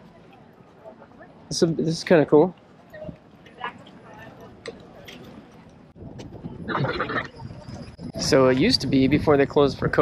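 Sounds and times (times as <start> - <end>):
murmur of outdoor crowd: 0.0 - 10.0.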